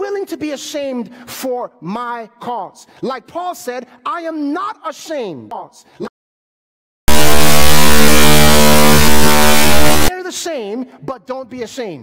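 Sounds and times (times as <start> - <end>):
harsh electrical buzz: 7.1 - 10.1.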